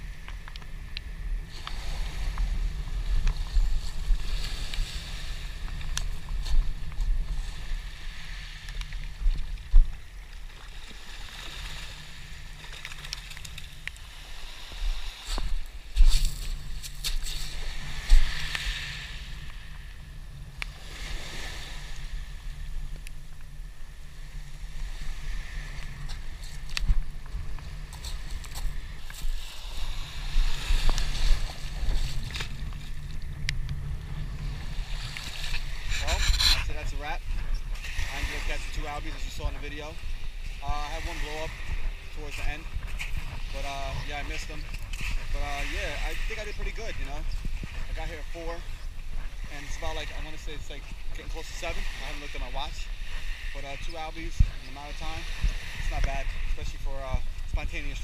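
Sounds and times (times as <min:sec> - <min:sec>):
wind rumbling on microphone: 0:00.0 - 0:58.0
waves washing over pebbles: 0:01.4 - 0:19.9, 0:24.1 - 0:58.0.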